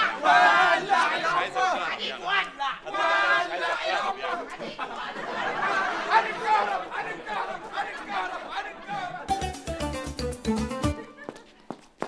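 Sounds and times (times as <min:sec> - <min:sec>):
men shouting and talking: 0:00.0 - 0:11.6.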